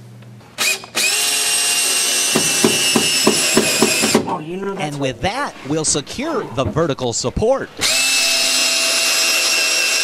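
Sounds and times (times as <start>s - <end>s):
cordless drill driving screw: 0.6s - 4.2s, 7.8s - 10.0s.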